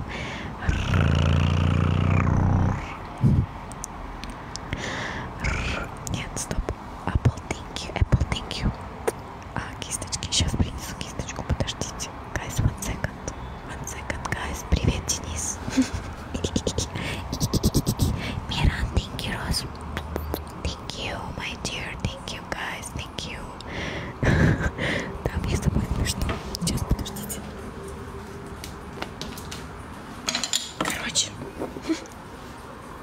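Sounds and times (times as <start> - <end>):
person whispering: 0.0 - 3.2, 5.2 - 8.8, 9.5 - 23.7, 25.2 - 27.5, 30.8 - 32.1
breathy hiss: 4.8 - 5.9
lip smacks and tongue clicks: 19.7 - 20.6.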